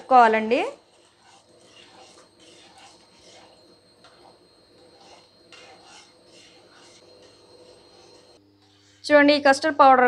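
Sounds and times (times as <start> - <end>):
spoon stirring in a pan: 0.0 - 9.0.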